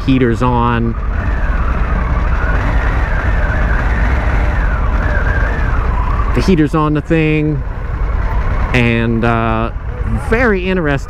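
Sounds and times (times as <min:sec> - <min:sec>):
motorcycle engine rumble: 0:00.0 - 0:11.0.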